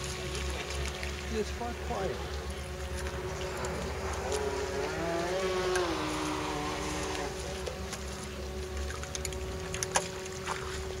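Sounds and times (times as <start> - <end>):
model speedboat motor whine: 0.0 - 11.0.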